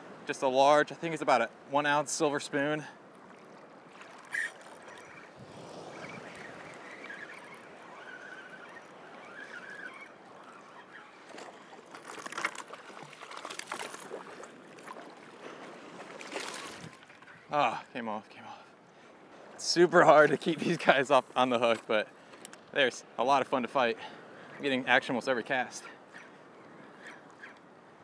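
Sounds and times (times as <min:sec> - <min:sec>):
water sloshing: 0:01.0 - 0:17.6.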